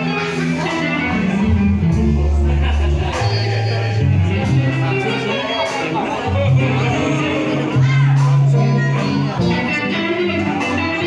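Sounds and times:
electric guitar: 0.0s - 11.0s
live blues band: 0.0s - 11.0s.

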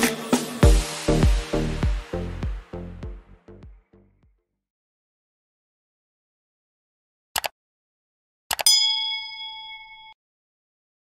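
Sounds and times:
bell ding: 8.6s - 10.2s.

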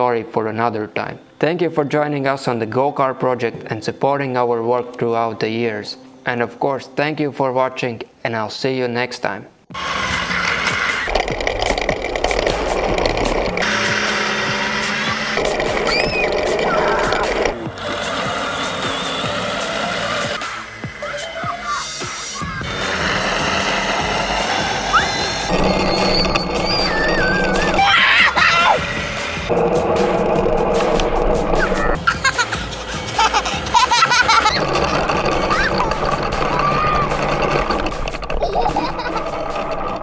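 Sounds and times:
background music: 0.0s - 40.0s
short high pitch glides: 20.4s - 28.0s.

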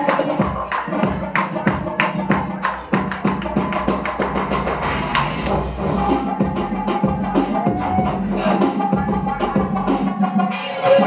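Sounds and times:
electronic bass music: 0.0s - 11.0s.

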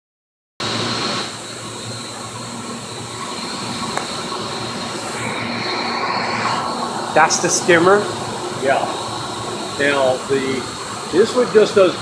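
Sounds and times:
high whine: 0.6s - 12.0s
water pumps humming: 0.6s - 12.0s.

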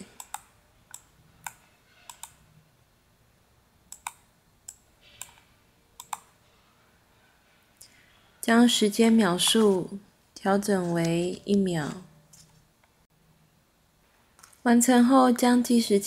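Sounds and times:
computer mouse buttons clicking: 0.1s - 2.4s, 3.9s - 6.3s.

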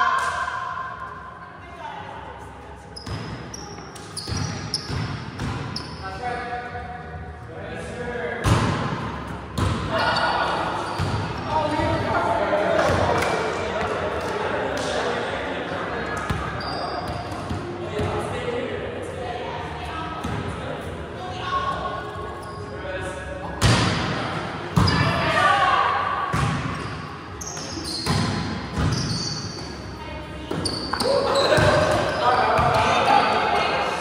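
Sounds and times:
volleyball slaps in a gym: 0.0s - 1.2s, 3.0s - 6.6s, 8.2s - 18.5s, 20.1s - 20.8s, 23.4s - 29.8s, 30.4s - 34.0s
players calling and chatting: 0.0s - 34.0s.

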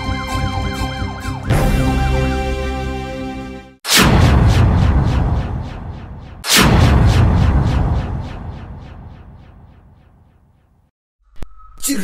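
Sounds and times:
deep booming cinematic hits: 3.9s - 10.5s.

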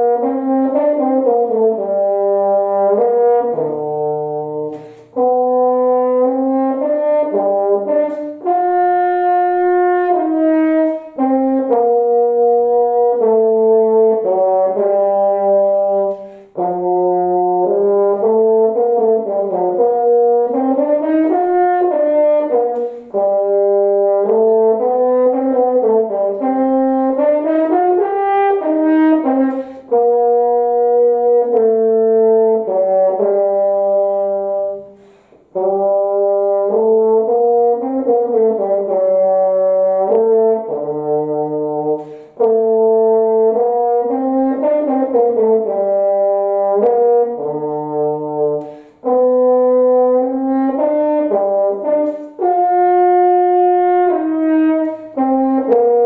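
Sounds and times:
solo french horn: 0.0s - 56.0s.

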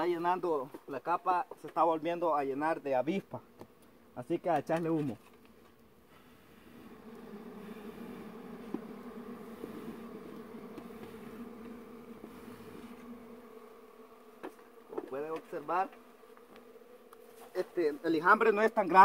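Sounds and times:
bees buzzing: 2.7s - 19.0s.

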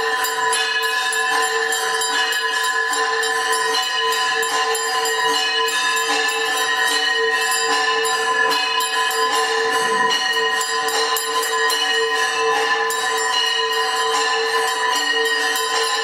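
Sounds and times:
temple bells ringing: 0.0s - 16.0s.

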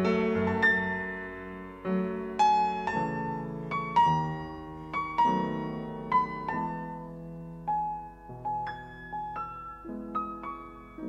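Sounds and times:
solo piano playing slow music: 0.0s - 11.0s.

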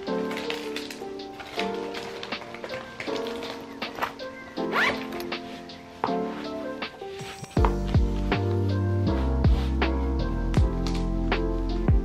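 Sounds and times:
lo-fi music with soft chords: 0.0s - 12.0s
bag zipper: 4.6s - 5.3s
deep bass line: 7.6s - 12.0s.

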